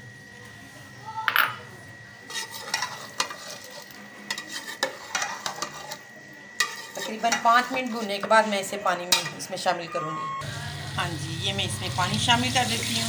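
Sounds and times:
masala sizzling: 1.8 - 9.8, 10.4 - 13.0
metal spoon scraping a pot: 2.2 - 9.5.

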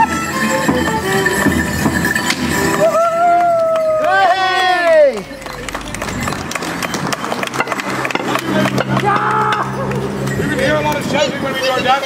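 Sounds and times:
band playing low held notes: 5.1 - 11.2.

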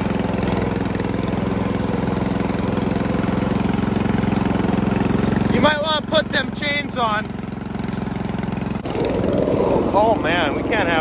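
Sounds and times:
riding lawn mower engine running: 0.0 - 11.0.

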